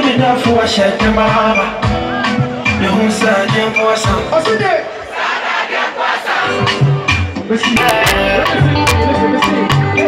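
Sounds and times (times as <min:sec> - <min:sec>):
live music bass: 0:00.0 - 0:04.8, 0:06.4 - 0:10.0
crowd shouting and singing: 0:00.0 - 0:10.0.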